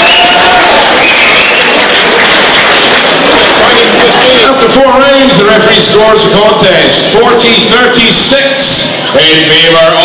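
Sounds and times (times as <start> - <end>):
shouts: 0.0 - 1.7
crowd voices talking: 0.0 - 10.0.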